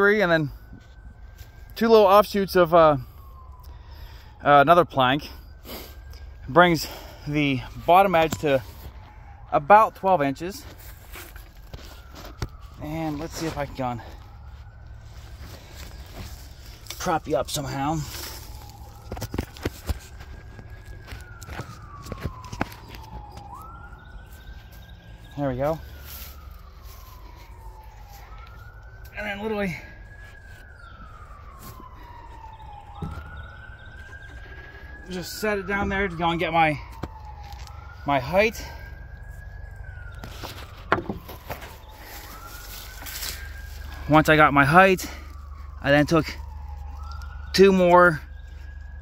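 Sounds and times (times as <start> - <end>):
faint siren wailing: 0.0 - 49.0.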